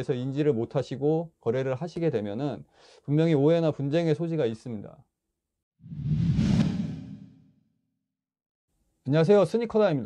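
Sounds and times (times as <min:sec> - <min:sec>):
whoosh sound effect: 0:05.9 - 0:07.4.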